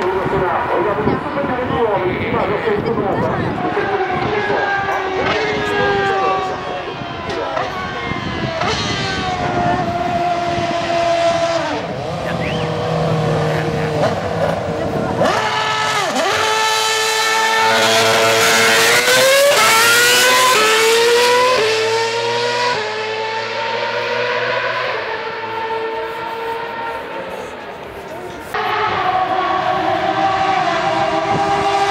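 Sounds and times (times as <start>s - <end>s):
race car engine at high revs: 0.0s - 31.9s.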